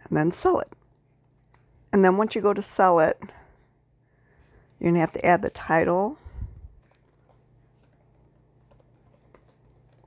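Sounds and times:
faint low hum: 0.0 - 10.0
soft keyboard typing: 6.8 - 10.0.

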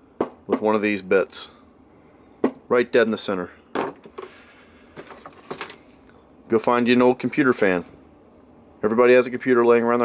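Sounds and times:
objects clicking and rustling: 5.0 - 6.0.

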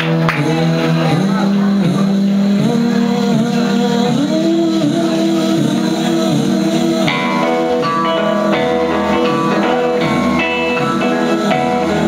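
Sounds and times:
rock band playing: 2.5 - 12.0.

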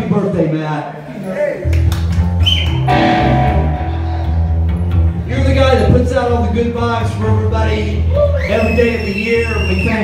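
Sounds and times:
electric bass playing: 1.8 - 8.4
electric guitar playing: 2.1 - 5.3.

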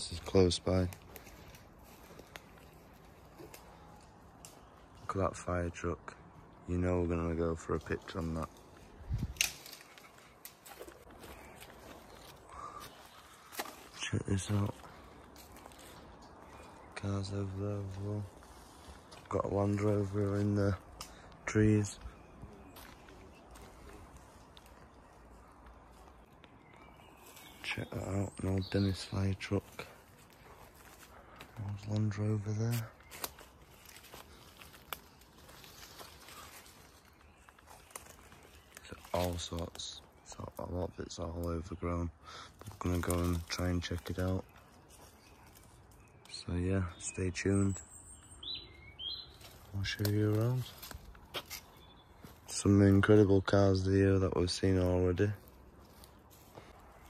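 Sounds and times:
footsteps on forest litter: 0.0 - 5.2, 7.4 - 41.6, 42.5 - 46.4, 47.6 - 57.0
twigs snapping and crackling: 0.2 - 5.1, 7.6 - 16.9, 19.0 - 27.8, 29.6 - 41.6, 42.6 - 46.4, 49.3 - 53.2, 55.3 - 57.0
twigs snapping: 0.8 - 5.0, 7.8 - 13.9, 20.7 - 21.4, 32.7 - 39.8, 49.3 - 52.4.

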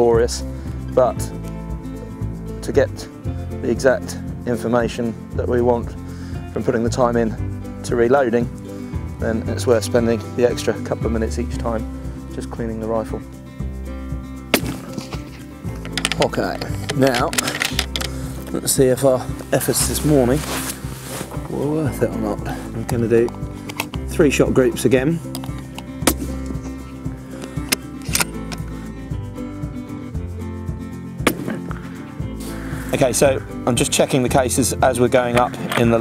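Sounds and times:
background music: 0.0 - 36.0
rifle shot: 31.3 - 31.7.

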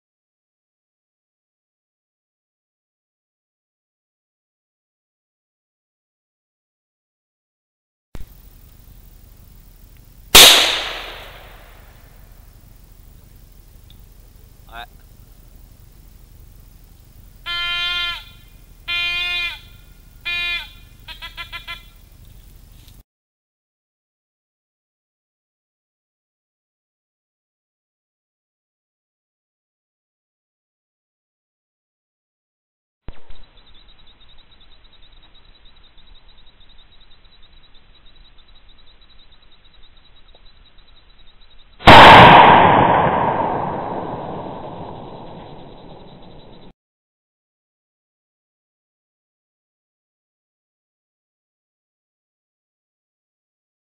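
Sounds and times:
gunshot echo rolling: 10.4 - 11.9, 41.8 - 46.7
rifle shot: 10.4 - 11.9, 41.8 - 46.7
hunting horn blasts: 17.4 - 22.0
short horn toots: 17.5 - 21.9.

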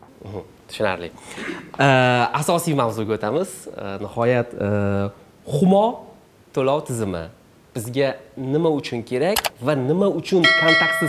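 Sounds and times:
man talking: 1.8 - 11.0
ringing bell-like chime: 10.4 - 11.0.

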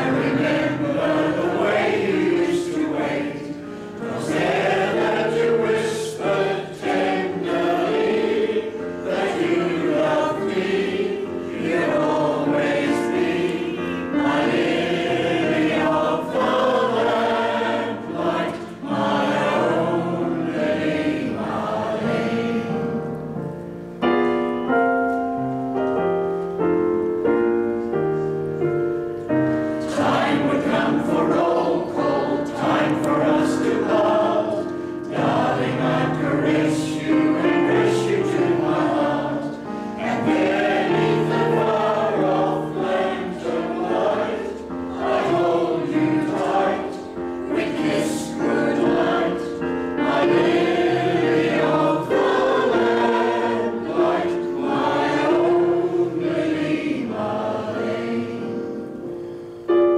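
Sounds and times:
mixed choir singing: 0.0 - 23.2, 29.4 - 59.4.

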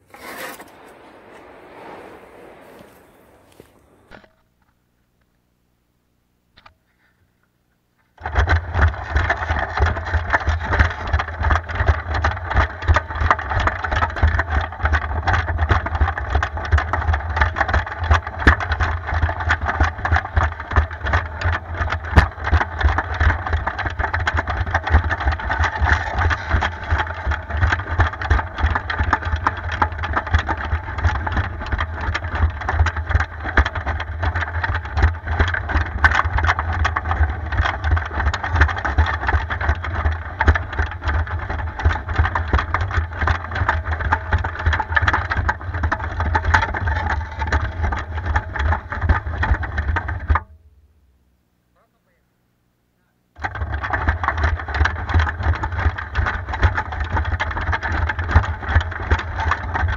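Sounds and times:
tracks rattling: 0.0 - 4.4.

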